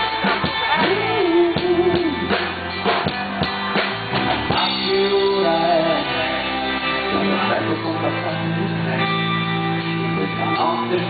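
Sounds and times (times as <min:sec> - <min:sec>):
drum kit: 0:00.0 - 0:11.0
electric guitars: 0:00.0 - 0:11.0
man singing into microphone: 0:00.6 - 0:02.5, 0:04.5 - 0:09.2, 0:09.8 - 0:11.0.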